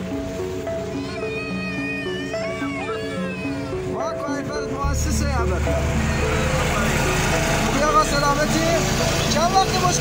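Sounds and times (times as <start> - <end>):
background music with held notes: 0.0 - 10.0
truck engine rumbling: 3.4 - 10.0.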